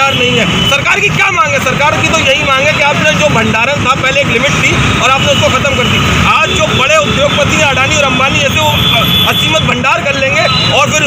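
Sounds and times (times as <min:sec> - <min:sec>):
man speaking into microphones: 0:00.0 - 0:11.0.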